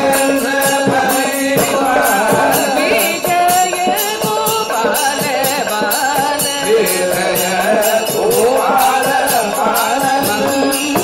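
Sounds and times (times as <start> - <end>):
high metallic percussion: 0.0 - 11.0.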